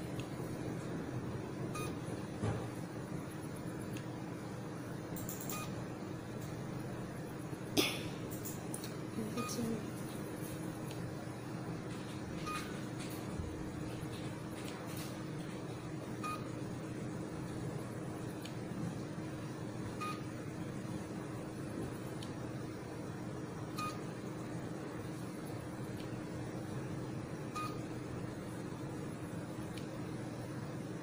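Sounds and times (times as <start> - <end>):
machine low hum: 0.0 - 31.0.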